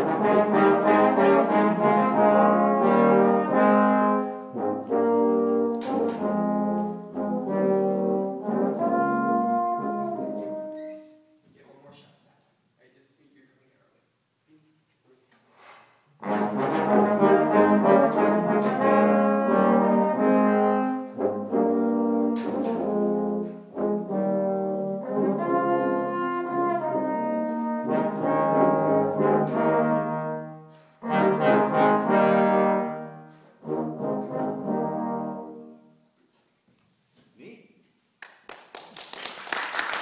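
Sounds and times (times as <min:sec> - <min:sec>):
brass ensemble playing chords: 0:00.0 - 0:10.8, 0:16.2 - 0:36.2.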